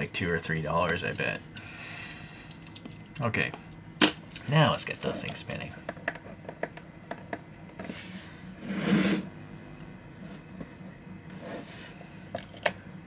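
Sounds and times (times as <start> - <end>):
turntable motor hum: 0.0 - 13.0.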